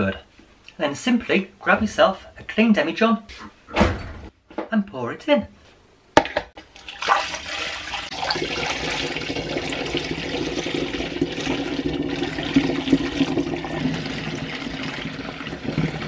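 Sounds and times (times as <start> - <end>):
liquid pouring into a glass jar: 6.8 - 16.0.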